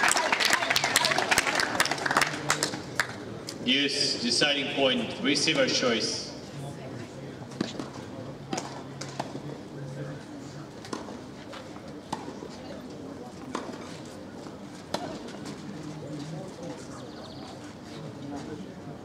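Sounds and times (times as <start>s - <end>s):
murmur of spectator chatter: 0.0s - 19.0s.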